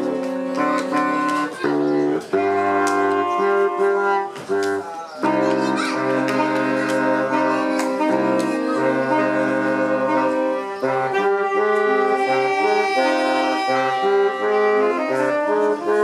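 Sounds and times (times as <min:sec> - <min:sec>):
saxophone quartet playing in harmony: 0:00.0 - 0:16.0.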